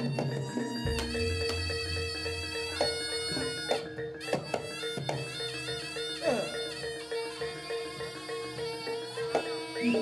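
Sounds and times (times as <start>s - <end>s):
drum strokes: 0.0s - 6.4s
double-reed trumpet melody: 1.1s - 7.8s.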